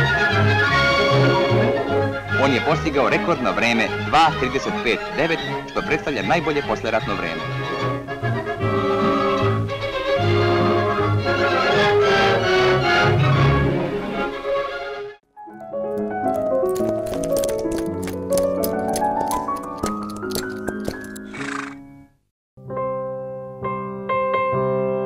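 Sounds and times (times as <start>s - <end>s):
music: 0.0s - 25.0s
piano music: 15.3s - 25.0s
climbing jingle notes: 15.5s - 21.6s
clip-clop hoofbeats: 15.5s - 21.8s
horse neigh: 21.2s - 21.9s.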